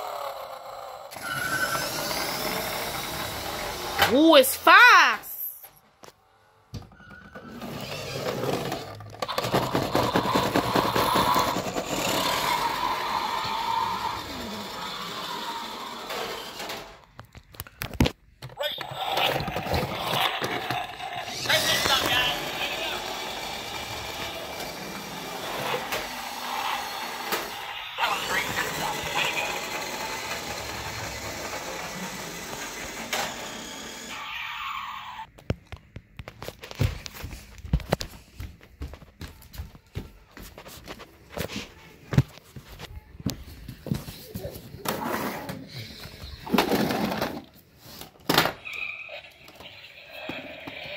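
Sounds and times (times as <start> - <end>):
toy car driving on hard floor: 0.0 - 4.1, 7.1 - 17.1, 18.8 - 34.2, 44.8 - 48.8
toy car electronic sound effects: 0.0 - 4.1, 7.6 - 16.9, 18.6 - 35.3, 48.6 - 50.9.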